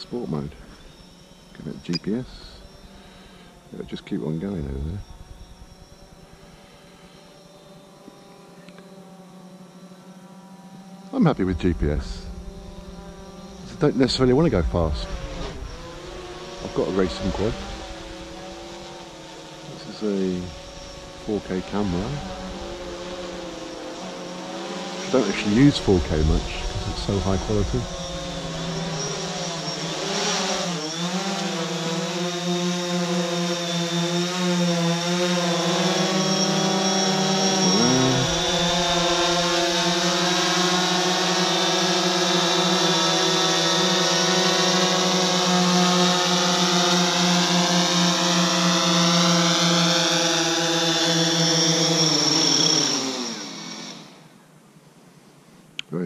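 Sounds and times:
drone propellers buzzing: 0.0 - 54.3.

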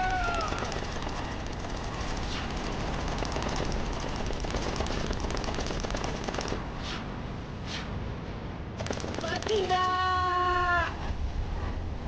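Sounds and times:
cartoon rifle fire: 0.0 - 6.7, 8.8 - 9.8.

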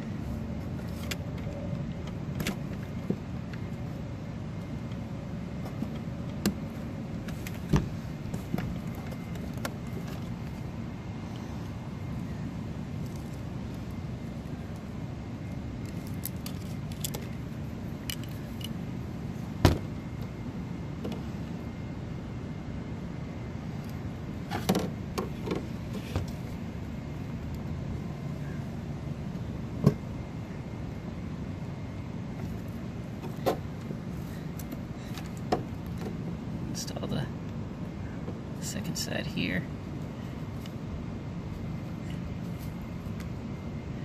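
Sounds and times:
low hum: 0.0 - 44.0.

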